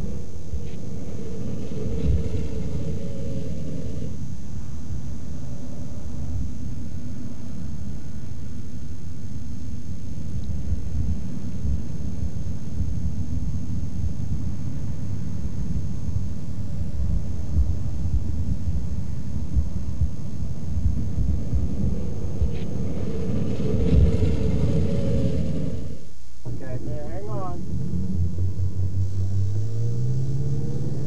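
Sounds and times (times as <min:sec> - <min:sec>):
faint aircraft engine hum: 0:00.0 - 0:31.0
wind rumble on microphone: 0:00.0 - 0:31.0.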